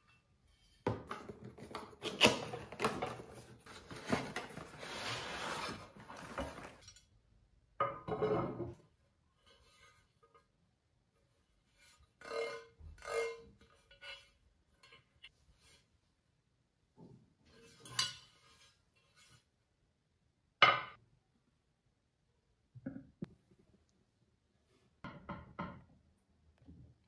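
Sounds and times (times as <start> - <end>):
cardboard packaging rustling: 2.0 - 6.8.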